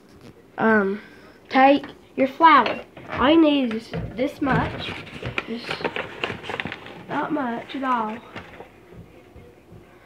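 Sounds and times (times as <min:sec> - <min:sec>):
paper bag crackling: 0:04.4 - 0:08.8.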